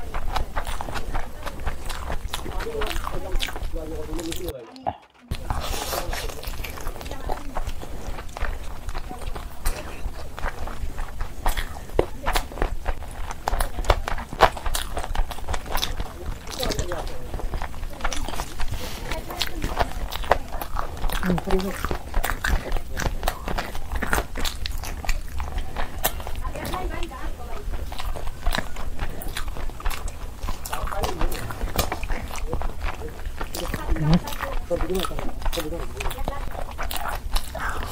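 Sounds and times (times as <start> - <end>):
wet chewing and lip smacking: 0.0 - 37.9.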